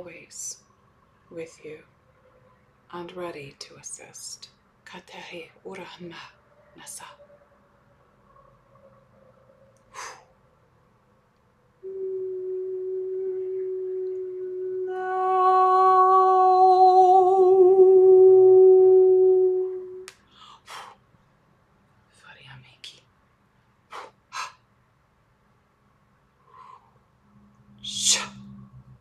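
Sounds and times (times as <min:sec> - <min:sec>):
mouth or breath sounds: 0:09.9 - 0:10.3, 0:23.9 - 0:24.6, 0:27.8 - 0:28.7
woman singing long note: 0:11.8 - 0:20.1.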